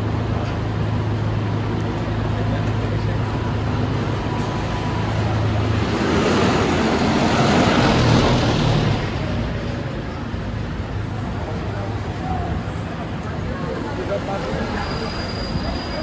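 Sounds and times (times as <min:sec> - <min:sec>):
street traffic hum: 0:00.0 - 0:16.0.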